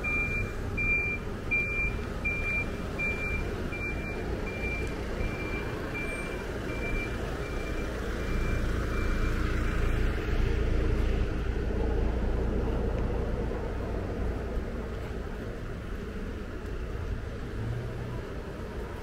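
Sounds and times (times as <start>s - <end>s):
truck reversing alarm beeping: 0.0s - 10.0s
low traffic rumble: 0.0s - 19.0s.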